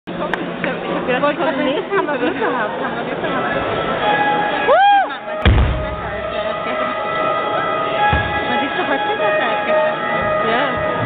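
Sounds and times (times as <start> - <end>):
band holding instrument notes: 3.5 - 11.0
sliding pitched note: 3.7 - 11.0
loud booming hit: 5.4 - 6.8, 8.1 - 8.6.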